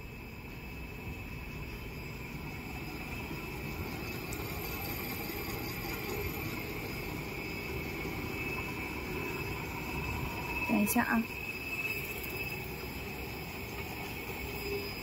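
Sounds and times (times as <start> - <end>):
high machine whine: 0.0 - 15.0.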